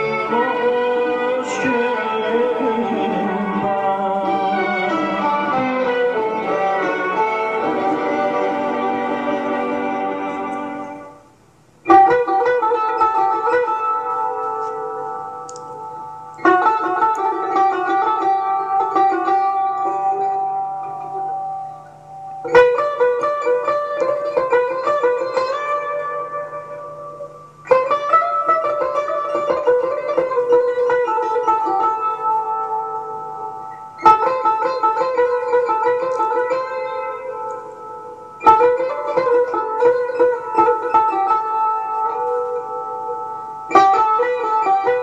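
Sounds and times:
plucked lute phrases: 0.0 - 45.0.

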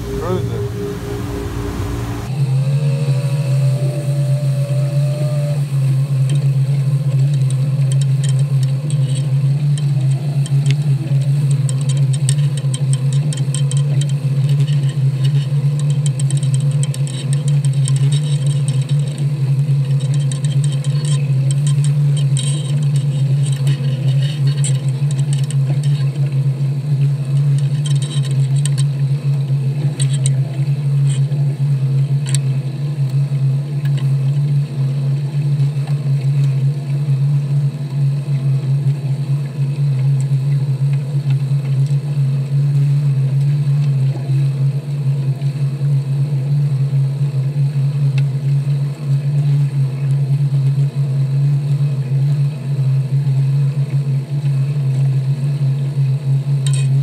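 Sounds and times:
short rising whine: 0.0 - 6.2
outboard motor idling: 0.0 - 7.7.

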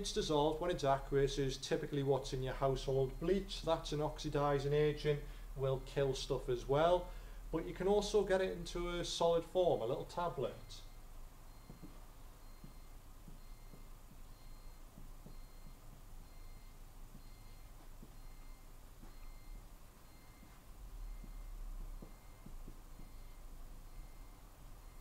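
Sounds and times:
faint electronic beep: 9.9 - 25.0.

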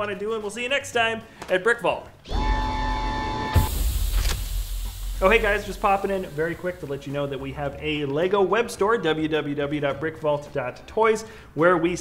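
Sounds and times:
mechanical hum with rumble: 2.3 - 7.6
sliding doors slamming: 3.5 - 5.8
hiss: 3.6 - 7.5.

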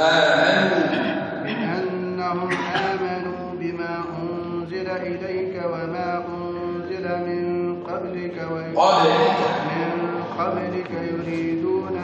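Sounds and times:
men chanting in unison: 0.0 - 5.5, 7.9 - 12.0.

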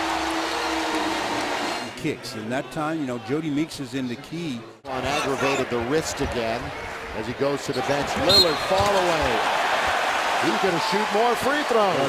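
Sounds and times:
arena crowd cheering: 0.0 - 2.0, 4.9 - 12.0.

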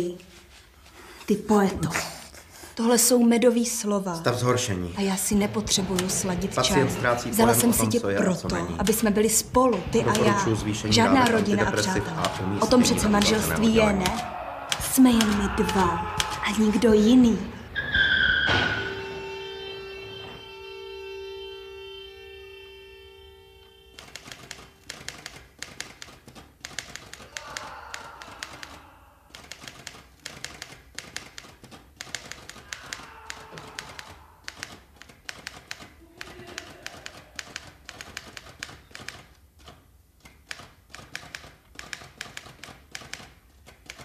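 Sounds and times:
sustained music chord: 18.9 - 24.0
typewriter keys clacking: 24.0 - 44.0.

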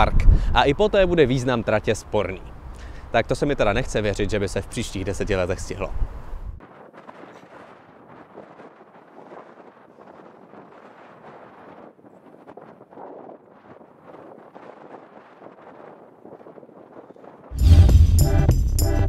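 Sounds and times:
wind rushing: 5.1 - 19.0.

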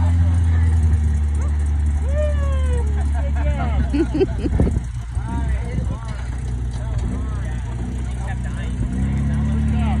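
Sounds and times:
truck engine revving under load: 0.0 - 10.0.

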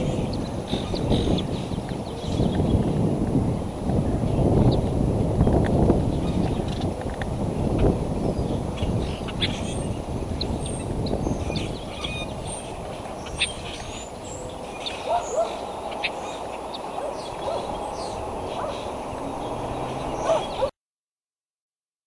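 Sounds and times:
wind rumbling on microphone: 0.0 - 20.7
high bird chirps: 8.4 - 20.7.

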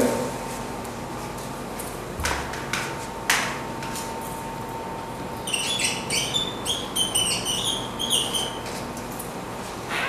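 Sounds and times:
whiteboard marker squeaking: 5.5 - 8.7.

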